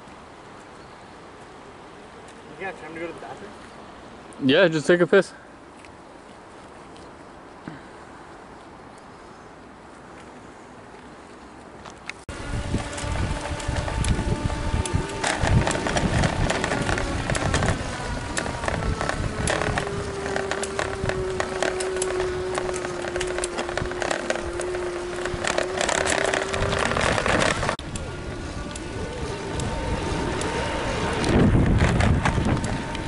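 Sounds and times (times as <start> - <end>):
steady hum: 12.3 - 33.0
wind on microphone: 12.3 - 33.0.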